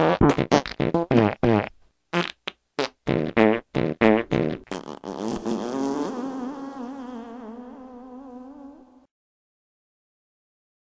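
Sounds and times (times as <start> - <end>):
long wavering fart: 0.0 - 9.1
short fart sounds: 0.0 - 9.1.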